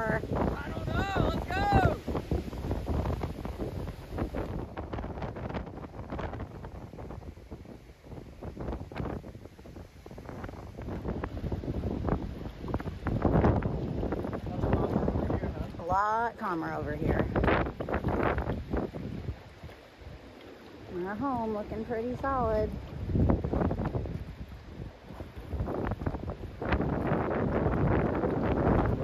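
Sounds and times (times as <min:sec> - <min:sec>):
surf breaking on rocks: 0:00.0 - 0:29.0
wind buffeting microphone: 0:00.0 - 0:29.0.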